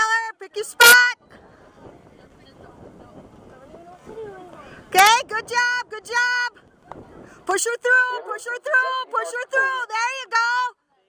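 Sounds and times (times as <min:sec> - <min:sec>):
faint distant voices: 0:00.2 - 0:11.0
wind noise on microphone: 0:00.7 - 0:09.3.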